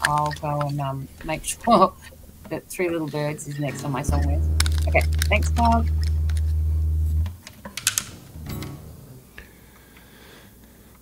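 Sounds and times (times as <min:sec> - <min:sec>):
steady low hum: 0:02.3 - 0:07.5
brief pitched sound: 0:03.7 - 0:07.4
sharp clicks: 0:03.7 - 0:08.8.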